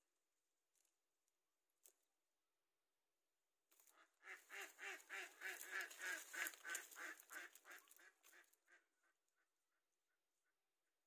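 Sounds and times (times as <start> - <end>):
waterfowl calling repeated notes: 3.8 - 10.6.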